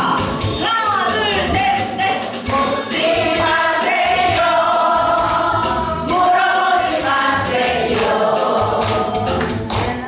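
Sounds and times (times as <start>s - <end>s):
backing track with steady beat: 0.0s - 10.0s
group singing in unison: 2.4s - 10.0s.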